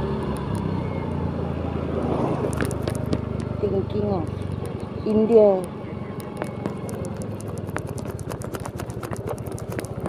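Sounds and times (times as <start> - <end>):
motor scooter engine running: 0.0 - 10.0
road noise: 0.0 - 10.0
wind: 0.0 - 10.0.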